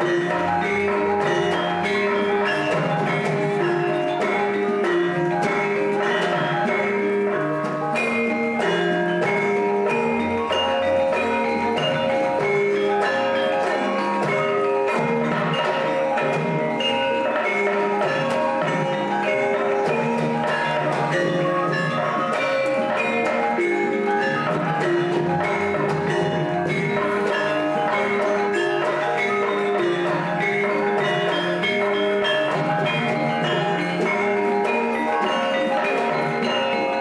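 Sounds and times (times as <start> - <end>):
gamelan metallophones and gongs: 0.0 - 37.0.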